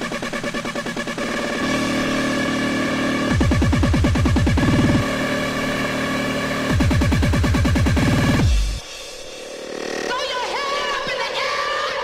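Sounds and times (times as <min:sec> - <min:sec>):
electronic dance music: 0:00.0 - 0:12.0
kick drums: 0:03.3 - 0:05.0, 0:06.7 - 0:08.8.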